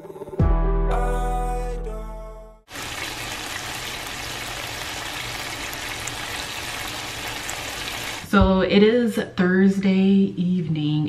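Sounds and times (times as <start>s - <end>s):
music: 0.0s - 2.7s
meat sizzling in a pan: 2.7s - 8.3s.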